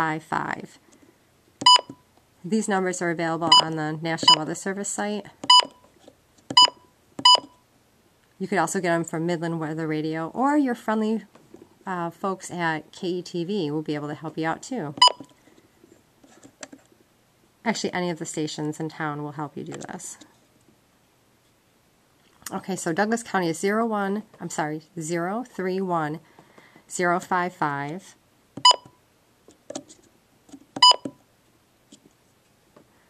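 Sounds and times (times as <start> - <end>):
keypad beep: 1.6 - 2.0, 3.5 - 4.5, 5.4 - 5.9, 6.5 - 7.6, 15.0 - 15.3, 28.6 - 29.0, 30.8 - 31.2
short electronic key beep: 6.6 - 7.6, 28.6 - 29.0, 30.8 - 31.1.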